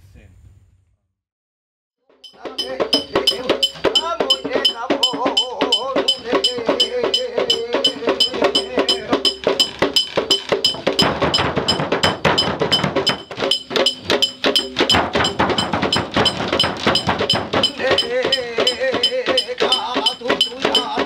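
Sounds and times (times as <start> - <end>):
sharp ringing percussion strikes: 2.1 - 21.0
person chanting: 2.3 - 9.6, 17.6 - 21.0.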